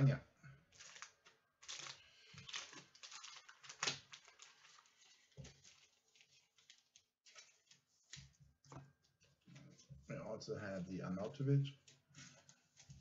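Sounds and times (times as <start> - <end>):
trading card rustling in plastic sleeve: 0.7 - 10.0, 11.2 - 13.0.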